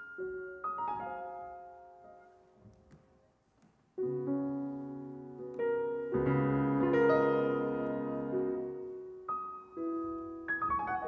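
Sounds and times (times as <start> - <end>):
grand piano playing: 0.0 - 2.4, 4.0 - 11.0.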